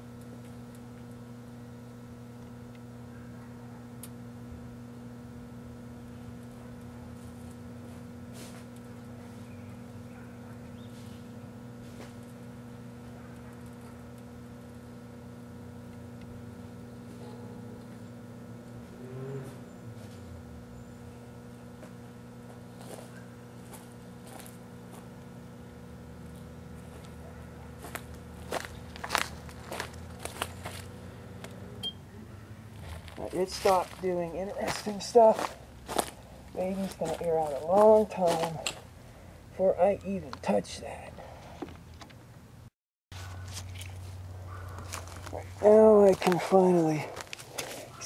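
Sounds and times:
microwave oven humming: 0:00.0 - 0:48.0.

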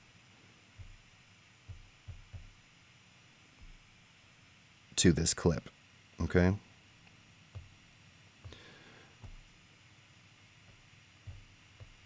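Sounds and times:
soft low thumps: 0:00.7 - 0:02.6, 0:03.6 - 0:04.0, 0:07.5 - 0:07.8, 0:09.2 - 0:09.6, 0:10.6 - 0:12.0.

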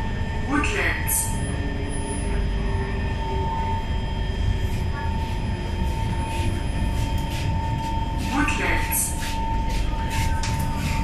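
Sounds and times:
train wheels rumbling on rail: 0:01.2 - 0:11.0.

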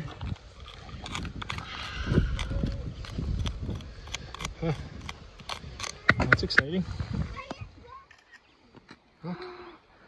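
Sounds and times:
screwdriver scraping rock: 0:00.0 - 0:06.8.

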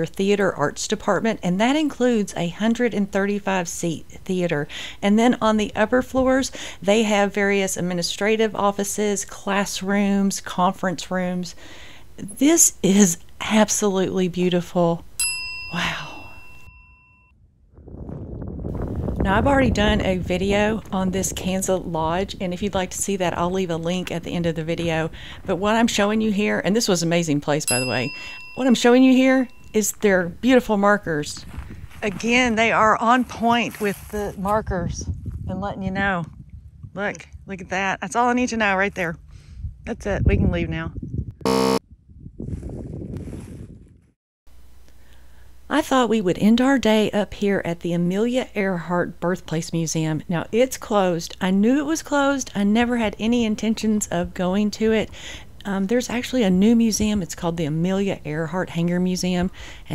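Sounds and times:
outdoor background noise: 0:00.0 - 0:16.2, 0:17.7 - 0:41.0, 0:44.5 - 0:59.9
bell-like ding: 0:15.2 - 0:17.3, 0:27.7 - 0:29.8
wind rumbling on microphone: 0:17.4 - 0:27.3, 0:30.1 - 0:44.2, 0:56.4 - 0:59.9
short flat electronic buzz: 0:41.4 - 0:41.8.

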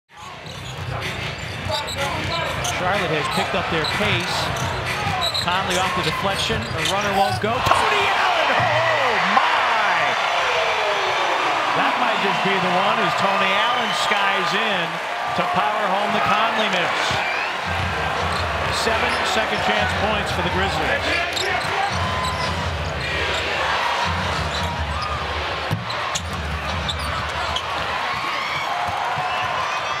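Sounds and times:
crowd noise: 0:00.1 - 0:30.0.

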